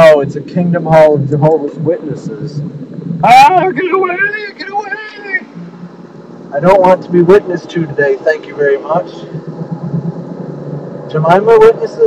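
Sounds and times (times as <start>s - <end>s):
car cabin engine and tyre drone: 0.0s - 12.0s.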